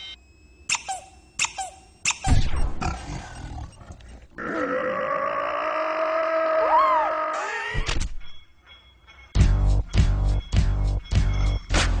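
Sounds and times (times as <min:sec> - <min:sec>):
cartoon pitch-dropping sounds: 0:00.7 - 0:02.5.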